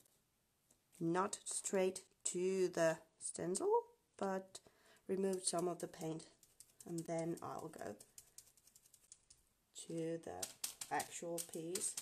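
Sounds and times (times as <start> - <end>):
paint dabbing taps: 5.1 - 12.0.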